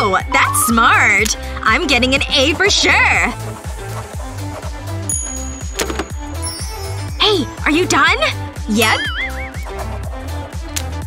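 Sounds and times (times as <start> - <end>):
background music with bass and beat: 0.2 - 11.0
wobbling warbling tone: 0.3 - 1.2, 8.8 - 9.8.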